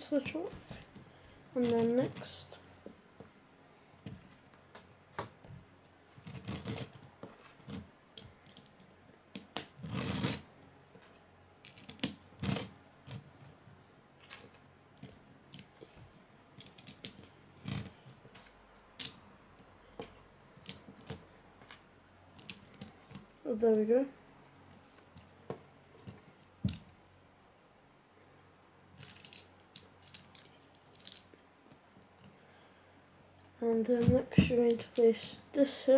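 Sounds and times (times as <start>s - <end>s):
plastic bricks clicking: 16.6s - 18.0s, 19.0s - 19.7s, 22.4s - 23.3s, 29.0s - 31.3s.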